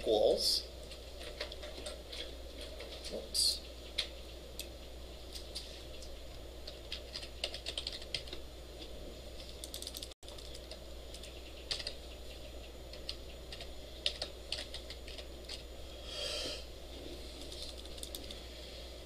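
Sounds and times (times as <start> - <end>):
low steady hum: 0.0 - 19.0
keyboard typing: 6.6 - 8.4, 9.4 - 15.6, 17.3 - 18.4.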